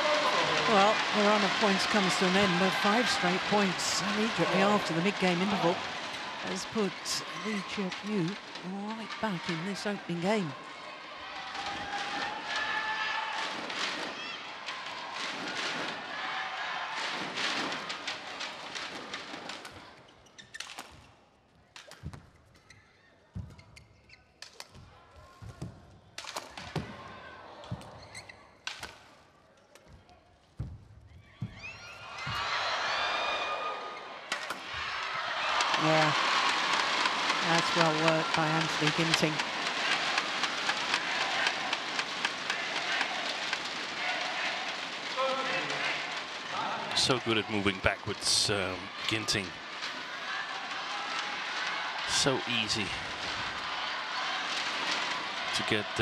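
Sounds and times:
crowd chattering: 0.0s - 12.6s, 33.9s - 56.0s
crowd cheering: 0.0s - 19.9s, 31.4s - 56.0s.

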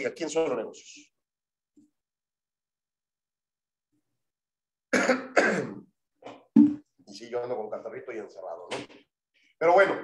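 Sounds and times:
man coughing: 4.9s - 5.9s
throat clearing: 4.9s - 5.9s.

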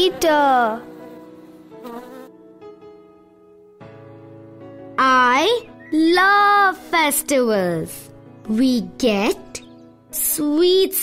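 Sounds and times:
cartoon bee buzzing: 0.0s - 2.4s
soft background music: 0.0s - 11.0s.

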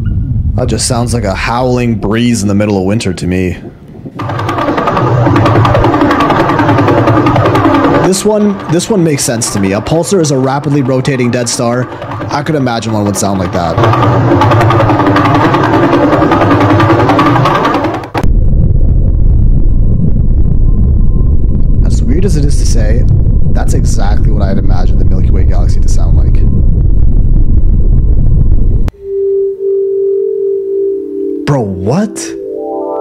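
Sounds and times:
deep rumbling drone: 3.5s - 31.3s
rapid pulses buzzing: 3.8s - 28.9s.

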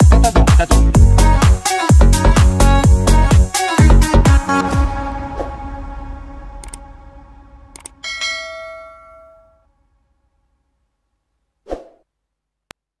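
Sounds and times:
electronic background music: 0.0s - 8.9s
bell-like ding: 8.0s - 9.7s.

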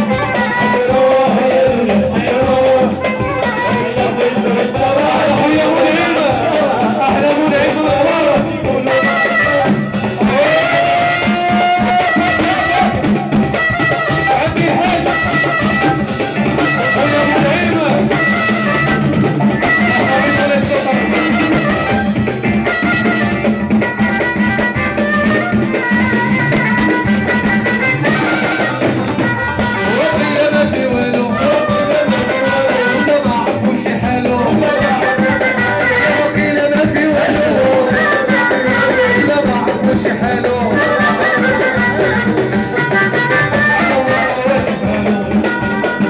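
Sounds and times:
congas: 0.0s - 46.0s
drum kit: 0.0s - 46.0s
keyboard: 0.0s - 46.0s.

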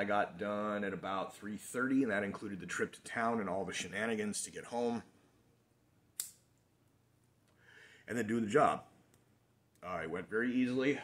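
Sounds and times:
lighter being struck: 6.2s - 6.4s.

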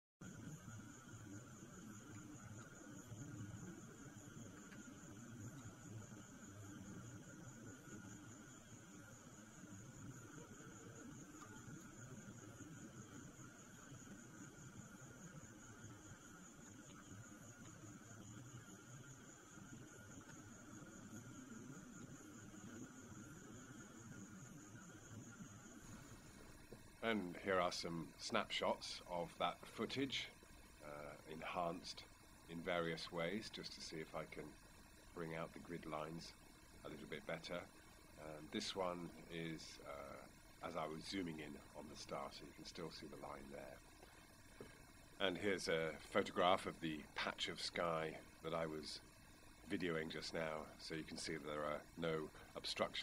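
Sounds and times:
high-pitched insect buzzing: 0.2s - 53.0s
lower insect buzzing: 0.2s - 53.0s.

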